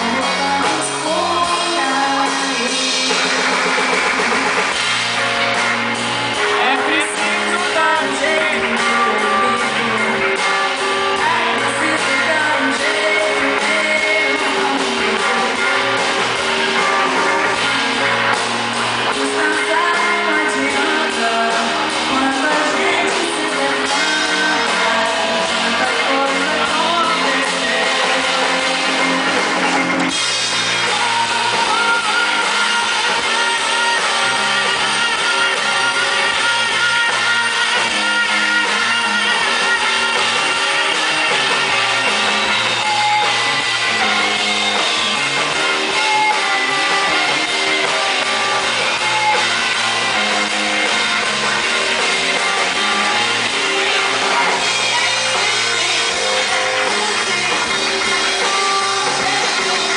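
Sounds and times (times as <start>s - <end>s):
woman singing into microphone: 0.0s - 3.3s, 6.6s - 10.3s, 11.2s - 15.9s, 19.0s - 28.9s, 30.8s - 40.7s
live band with guitar and drums: 0.0s - 59.9s.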